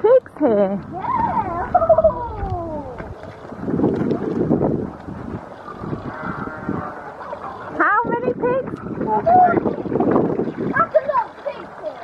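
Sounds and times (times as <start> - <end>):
pigs grunting: 5.7 - 7.7
pig squealing: 6.0 - 7.1.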